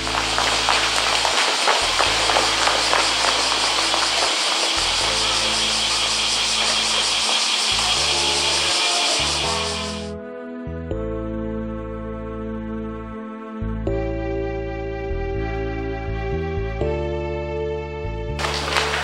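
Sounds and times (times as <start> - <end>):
outdoor ambience hiss: 0.0 - 10.1, 18.4 - 19.0
soft background music: 0.0 - 19.0.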